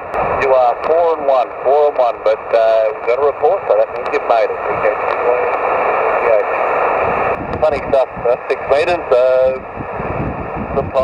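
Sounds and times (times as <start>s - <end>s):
radio receiver hiss: 0.0s - 9.7s
weak voice over radio: 0.4s - 6.6s, 7.6s - 9.6s, 10.8s - 11.0s.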